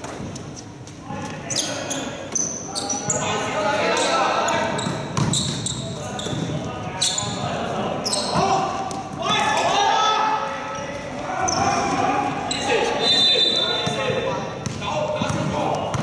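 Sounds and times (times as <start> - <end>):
players calling out: 1.5 - 16.0
basketball bouncing on court floor: 4.8 - 6.6, 13.8 - 16.0.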